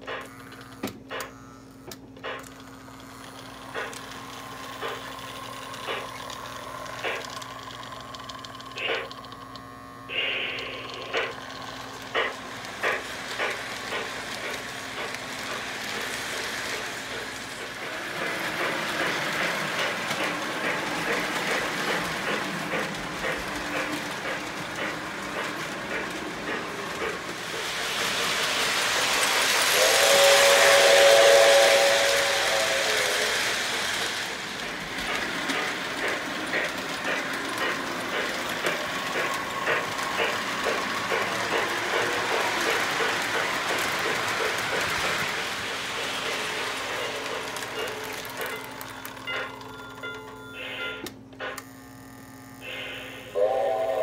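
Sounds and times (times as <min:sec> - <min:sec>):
wheels running on track: 0:02.2 - 0:51.6
model steam locomotive chuffing: 0:02.2 - 0:54.0
model train whistle: 0:29.6 - 0:33.4, 0:52.6 - 0:54.0.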